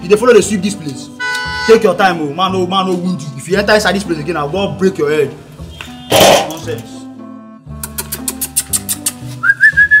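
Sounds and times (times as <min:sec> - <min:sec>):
background music with bass and percussion: 0:00.0 - 0:10.0
man whistling: 0:08.8 - 0:10.0.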